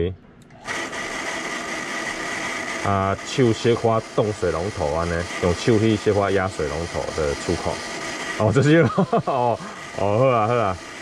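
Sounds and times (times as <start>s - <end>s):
water pump running with high whine: 0.5s - 11.0s.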